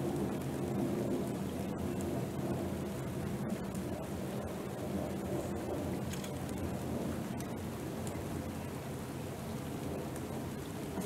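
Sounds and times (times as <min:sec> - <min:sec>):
low rumble: 0:00.0 - 0:10.7
raindrop ticks: 0:00.0 - 0:11.0
steady rain hiss: 0:00.0 - 0:11.0.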